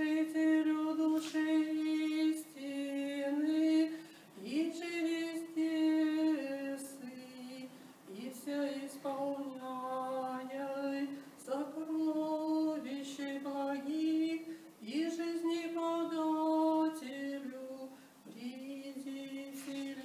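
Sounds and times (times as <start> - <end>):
woman singing unaccompanied: 0.0 - 20.0.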